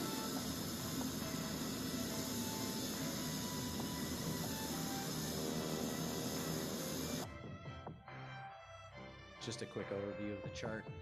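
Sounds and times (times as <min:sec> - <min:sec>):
turboprop airplane engine: 0:00.0 - 0:07.2
music playing: 0:00.0 - 0:11.0.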